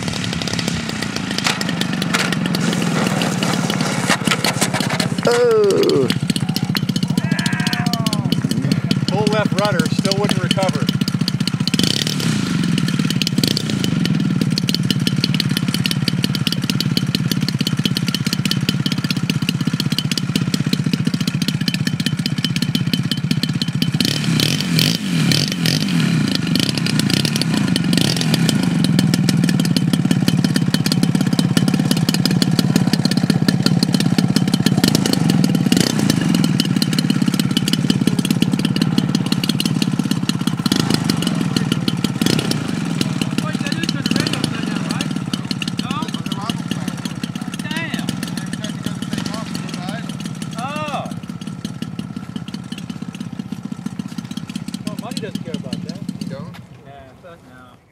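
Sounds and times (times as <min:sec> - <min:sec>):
model plane engine running: 0:00.0 - 0:57.9.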